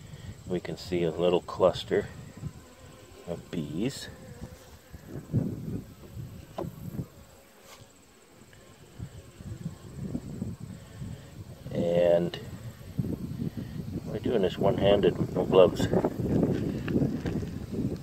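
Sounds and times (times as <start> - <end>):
bees buzzing: 0.0 - 18.0
steady bee hum: 0.0 - 18.0.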